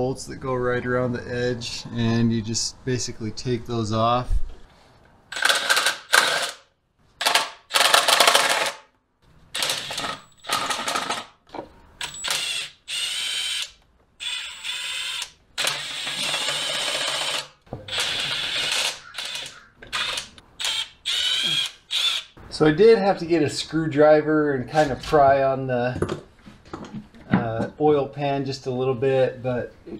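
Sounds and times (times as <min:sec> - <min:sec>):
ratchet wrench bursts: 0:05.3 - 0:08.8, 0:12.0 - 0:22.4.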